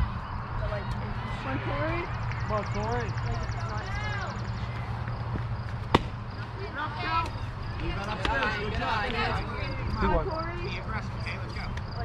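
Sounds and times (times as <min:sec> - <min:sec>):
people calling out: 0:00.5 - 0:05.1
sharp bat crack: 0:05.9 - 0:06.2.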